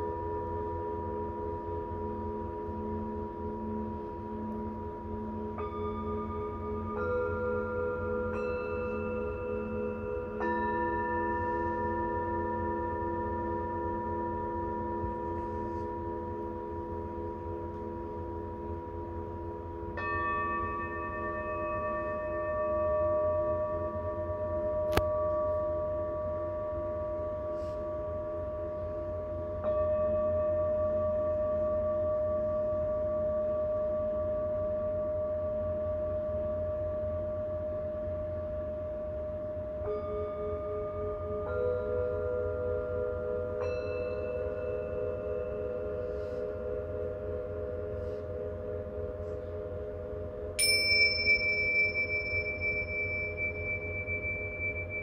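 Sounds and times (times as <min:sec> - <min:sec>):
singing bowls ringing: 0:00.0 - 0:55.0
mallet striking bowl: 0:50.6 - 0:55.0.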